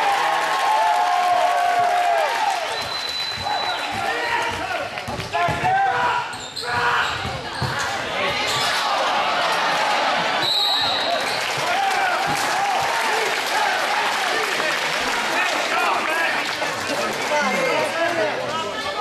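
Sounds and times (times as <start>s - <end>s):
crowd voices and shouts: 0.0s - 19.0s
referee's whistle blast: 2.7s - 4.1s, 10.4s - 11.3s.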